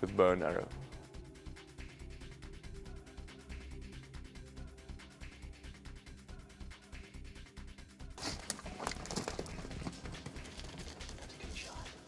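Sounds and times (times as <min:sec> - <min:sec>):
hooves clattering on stony ground: 0:08.2 - 0:11.8.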